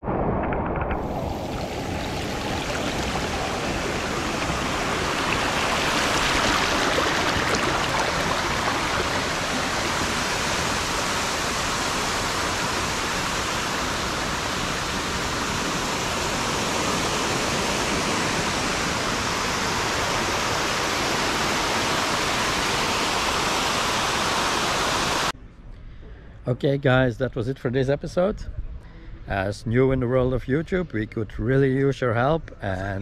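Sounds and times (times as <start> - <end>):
stream rushing over rocks: 0.9 - 25.3.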